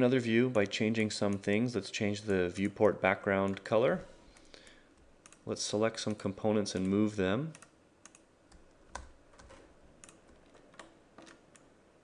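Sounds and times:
computer mouse clicks: 0:04.3 - 0:05.4, 0:06.8 - 0:11.7.

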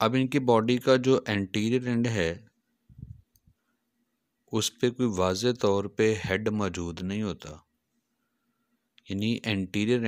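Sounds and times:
man's voice: 0:04.5 - 0:07.6, 0:09.1 - 0:10.0.

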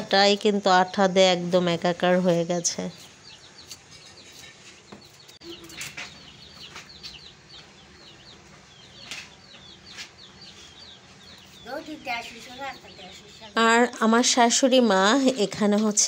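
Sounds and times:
chicks peeping: 0:02.3 - 0:13.7.

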